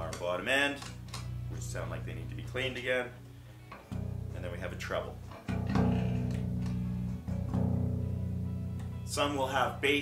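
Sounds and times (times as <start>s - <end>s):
electric bass notes: 0.0s - 10.0s.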